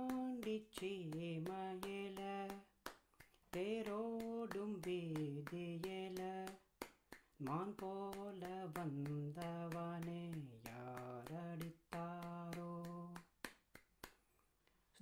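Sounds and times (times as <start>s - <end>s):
man singing unaccompanied: 0.0s - 2.7s, 3.5s - 6.7s, 7.4s - 13.4s
hands clapping on the beat: 0.0s - 14.4s.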